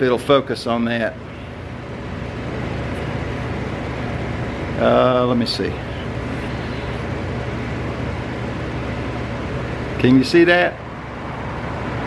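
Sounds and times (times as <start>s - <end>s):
electric fan whirring: 0.0s - 12.0s
low motor hum: 0.0s - 12.0s.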